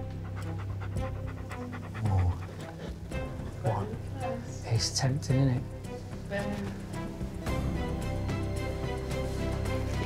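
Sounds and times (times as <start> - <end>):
dog panting: 0.0 - 5.0.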